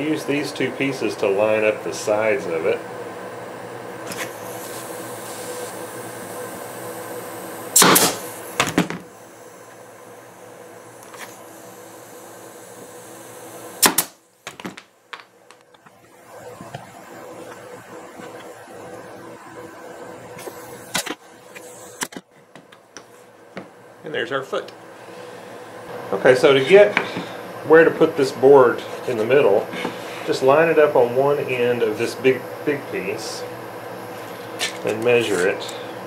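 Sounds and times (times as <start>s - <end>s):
steady background hum: 0.0s - 36.0s
pneumatic nailer shots: 4.0s - 4.8s, 7.7s - 9.1s, 13.8s - 14.9s, 20.4s - 22.2s.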